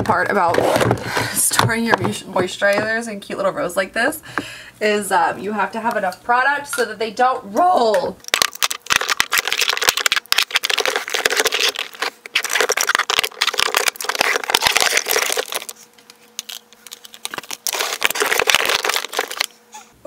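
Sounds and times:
jars clicking and knocking: 0:08.2 - 0:15.7
plastic bins rattling: 0:16.9 - 0:19.5.

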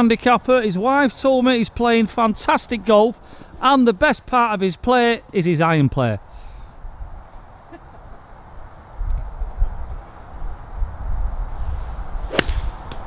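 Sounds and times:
wind rumble on microphone: 0:08.5 - 0:13.0
golf club striking ball: 0:12.3 - 0:13.0.

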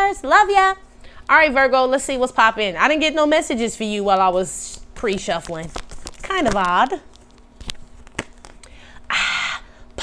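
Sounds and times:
cards rustling: 0:05.0 - 0:08.8.

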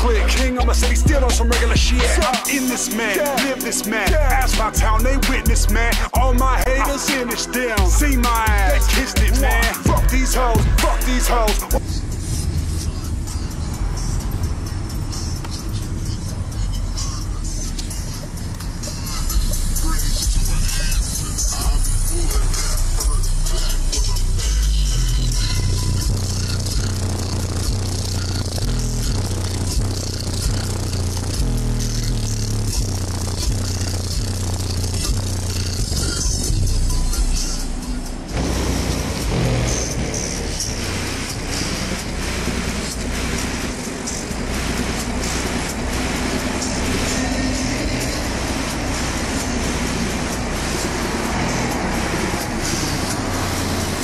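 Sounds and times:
heavy hip-hop bass beat: 0:00.0 - 0:54.0.

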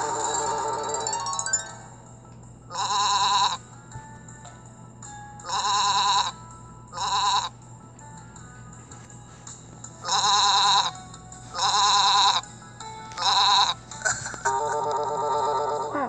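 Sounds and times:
twinkling musical cue: 0:00.0 - 0:02.2
faint low hum: 0:00.0 - 0:16.0
cartoon sheep bleating: 0:02.7 - 0:03.6, 0:05.5 - 0:06.4, 0:07.0 - 0:07.5, 0:10.0 - 0:10.9, 0:11.6 - 0:12.4, 0:13.2 - 0:13.8.

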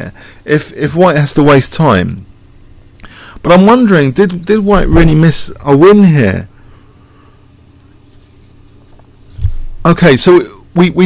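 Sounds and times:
low hum: 0:00.0 - 0:11.0
soft low thump: 0:09.4 - 0:09.8.

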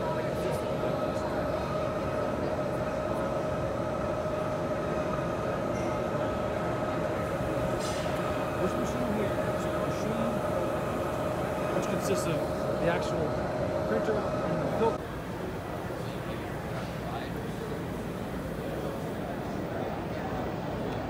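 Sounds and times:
printer mechanical hum: 0:00.0 - 0:21.0.

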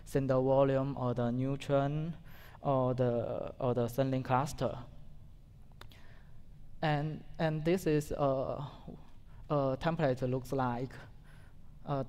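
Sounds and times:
person speaking: 0:00.0 - 0:05.2, 0:06.7 - 0:11.2.

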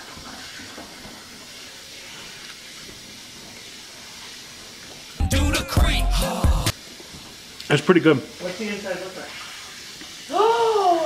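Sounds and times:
person's drawn-out vocal exclamation: 0:10.3 - 0:11.0.

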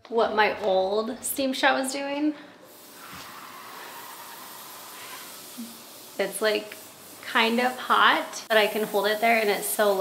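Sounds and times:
steam cleaner hissing: 0:02.6 - 0:10.0.

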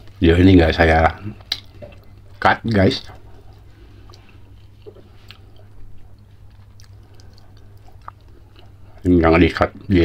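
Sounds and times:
low steady hum: 0:00.0 - 0:10.0
person chewing food: 0:03.1 - 0:09.1.

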